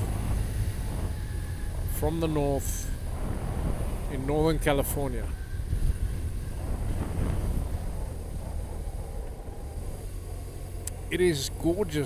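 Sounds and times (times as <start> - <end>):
motorcycle engine rumble: 0.0 - 12.0
wind on microphone: 0.0 - 12.0.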